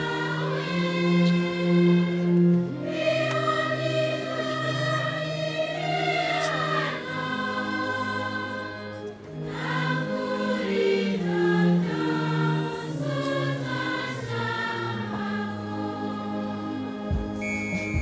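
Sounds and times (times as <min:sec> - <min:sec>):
choir singing a hymn: 0:00.0 - 0:18.0.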